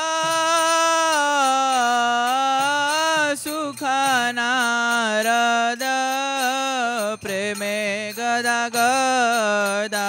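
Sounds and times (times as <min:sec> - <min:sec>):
person singing ornamented notes: 0:00.0 - 0:10.0.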